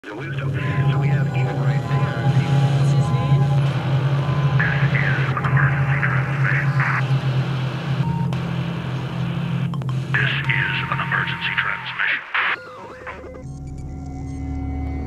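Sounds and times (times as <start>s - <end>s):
faint steady tones: 0.0s - 12.1s
garbled radio-like warbling: 0.0s - 13.5s
loud electronic hum: 0.0s - 15.0s.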